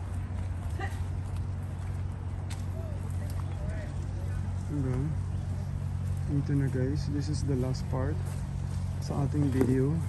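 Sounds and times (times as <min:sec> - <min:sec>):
steady low rumble: 0:00.0 - 0:10.0
faint distant voices: 0:00.6 - 0:10.0.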